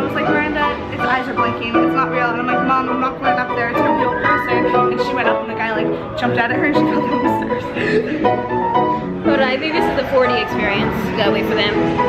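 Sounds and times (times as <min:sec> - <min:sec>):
string instrument music: 0:00.0 - 0:12.0.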